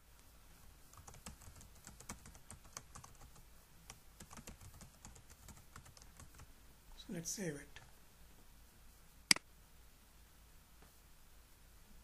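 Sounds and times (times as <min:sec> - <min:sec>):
typing on computer keyboard: 0:00.9 - 0:06.5.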